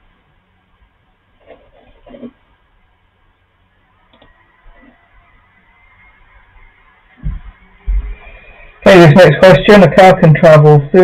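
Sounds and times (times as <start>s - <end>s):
dull low thumps: 7.2s - 8.2s.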